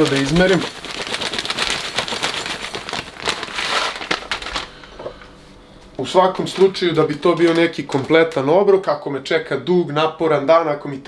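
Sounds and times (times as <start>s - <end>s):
plastic bag crinkling: 0.0s - 5.4s, 6.0s - 8.9s.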